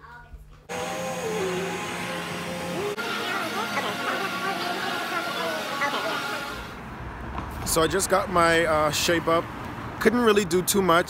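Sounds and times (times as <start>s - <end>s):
electric hair tool whirring: 0.7s - 6.8s.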